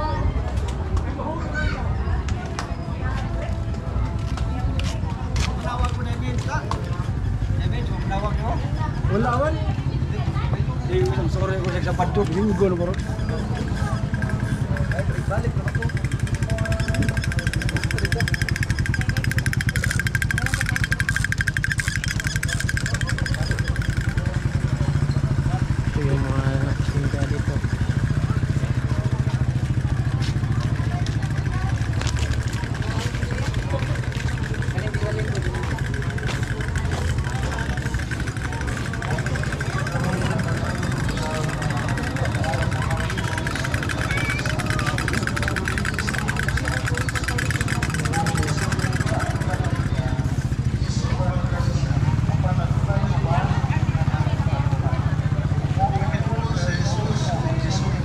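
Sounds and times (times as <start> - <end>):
people chattering: 0.0 - 58.0
small engine running: 0.1 - 58.0.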